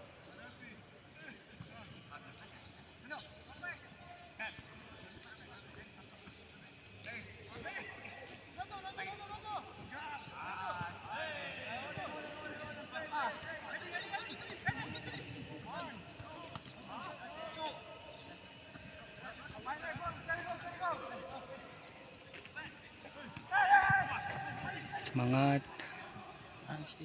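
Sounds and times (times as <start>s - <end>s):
footballers shouting: 7.2s - 26.6s.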